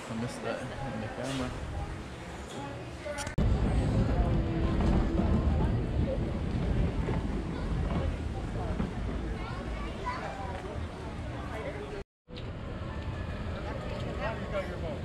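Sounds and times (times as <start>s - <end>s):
people chattering: 0.0s - 15.0s
low rumble: 3.4s - 9.8s.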